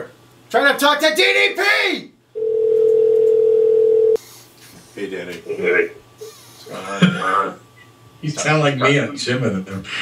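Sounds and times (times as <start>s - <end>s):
telephone call tone: 2.4s - 4.2s.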